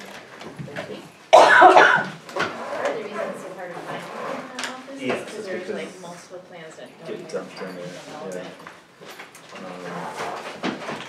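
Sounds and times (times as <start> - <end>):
people talking in a room: 0.0 - 11.0
person coughing: 1.4 - 2.1.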